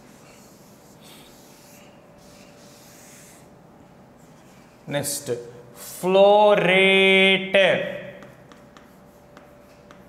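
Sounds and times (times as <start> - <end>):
chalk tapping and scratching: 0.0 - 3.5, 8.1 - 10.0.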